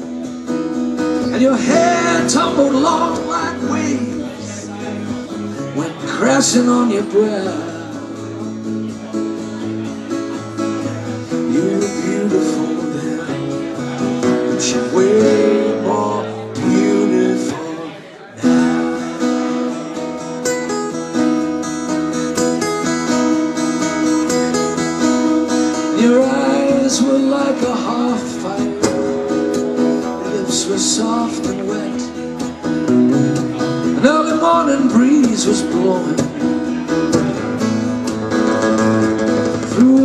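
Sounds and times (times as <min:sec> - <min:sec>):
acoustic guitars strumming: 0:00.0 - 0:40.0
man singing: 0:01.2 - 0:08.5, 0:10.8 - 0:19.9, 0:25.4 - 0:37.5, 0:39.3 - 0:40.0.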